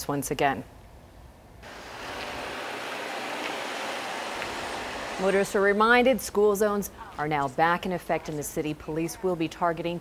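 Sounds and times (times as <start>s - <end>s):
car tyre and road noise: 1.6s - 5.6s.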